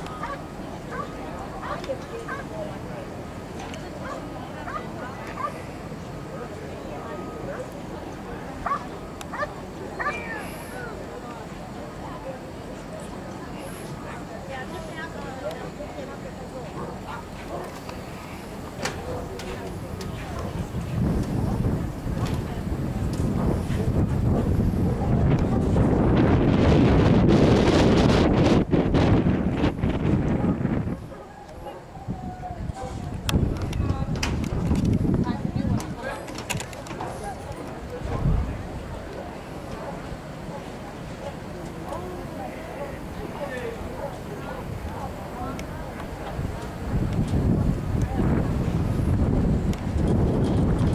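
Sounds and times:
dog barking: 0:08.6 - 0:10.2
wind buffeting microphone: 0:17.0 - 0:40.0, 0:43.1 - 0:50.9.

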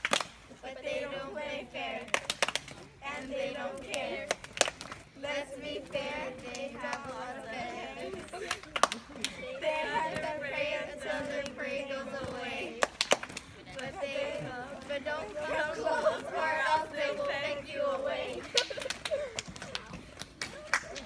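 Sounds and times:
girls chanting together: 0:00.6 - 0:19.3.

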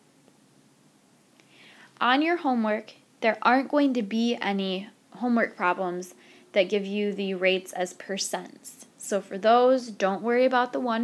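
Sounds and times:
soft breath drawn in: 0:01.4 - 0:02.0, 0:06.2 - 0:06.5.

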